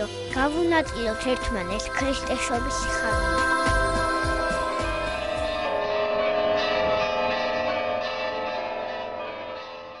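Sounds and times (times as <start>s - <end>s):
church bells ringing: 0.0s - 10.0s.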